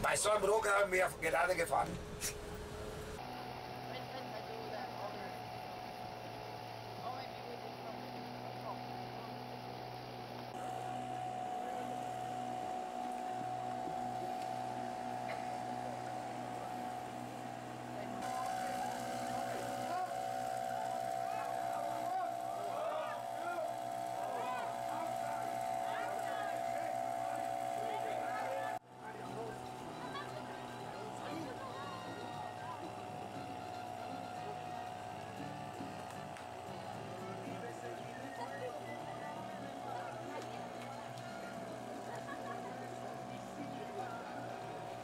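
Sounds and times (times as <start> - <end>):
boat motors droning: 0.0 - 45.0.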